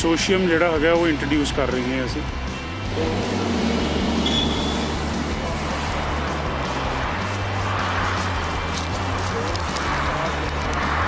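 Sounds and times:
outdoor noise: 1.8 - 11.0
diesel engine humming: 2.2 - 10.7.

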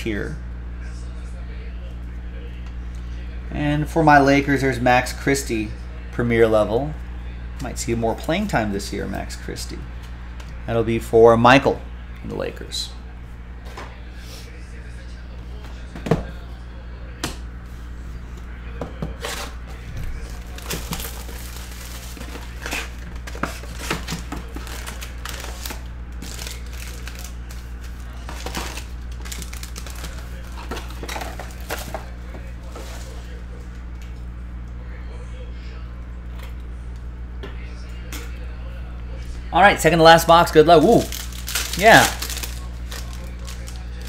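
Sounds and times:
foil wrappers crinkling and tearing: 19.2 - 33.5, 40.0 - 44.0.

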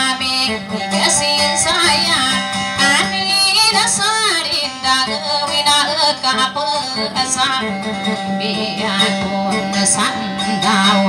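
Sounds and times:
acoustic guitar: 0.0 - 11.0
woman singing: 0.0 - 11.0.

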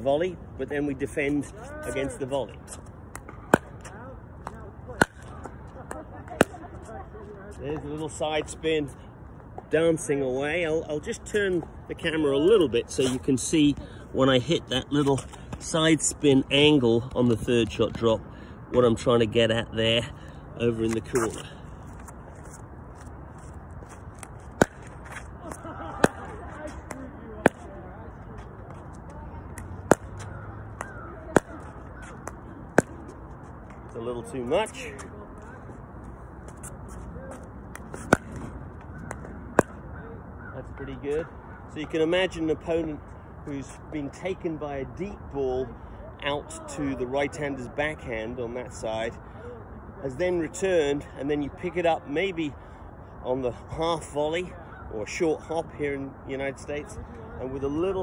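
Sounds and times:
ball bouncing on hard court: 29.5 - 33.1.

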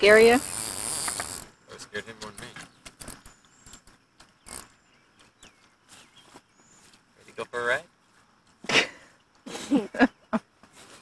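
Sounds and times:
fishing reel clicking and ratcheting: 0.0 - 1.5, 2.4 - 4.7.

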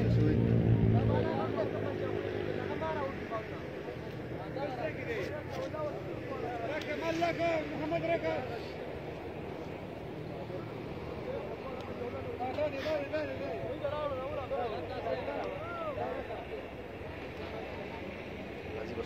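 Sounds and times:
low background noise: 0.0 - 19.0.

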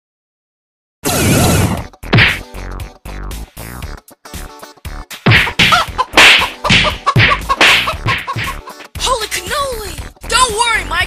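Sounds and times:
cartoon whip-crack and whack hits: 1.1 - 2.5, 5.1 - 8.9
cartoon scuffle: 5.3 - 8.9.

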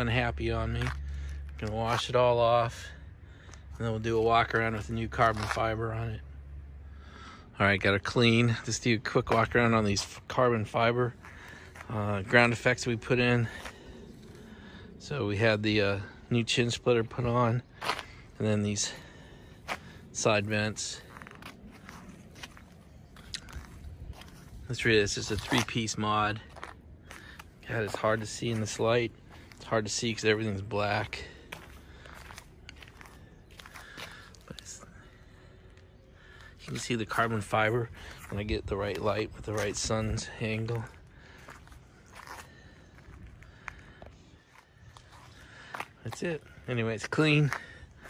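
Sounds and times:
faint footsteps on asphalt: 0.0 - 48.0
outdoor background noise: 0.0 - 48.0.

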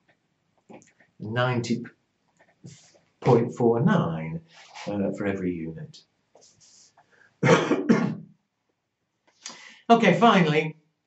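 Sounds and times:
man coughing: 7.4 - 8.2.

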